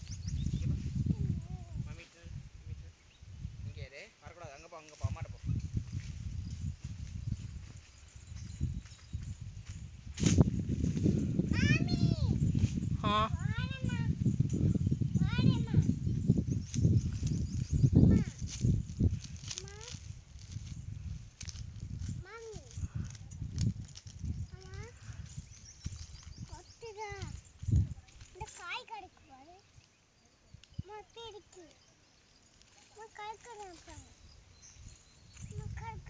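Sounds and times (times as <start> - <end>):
wind buffeting microphone: 0.0 - 4.0, 5.0 - 31.9, 32.9 - 36.0.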